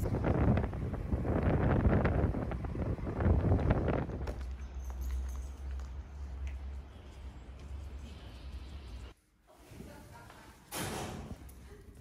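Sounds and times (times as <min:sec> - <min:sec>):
wind buffeting microphone: 0:00.0 - 0:04.7.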